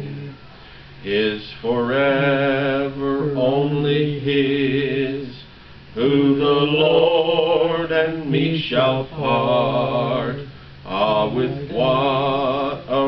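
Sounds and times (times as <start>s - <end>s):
man singing a hymn: 1.0s - 5.4s, 6.0s - 13.0s.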